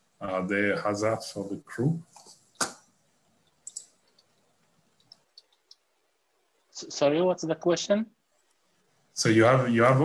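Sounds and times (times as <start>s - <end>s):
quiet call line noise: 1.1s - 7.2s
faint sharp clicks: 3.4s - 5.9s.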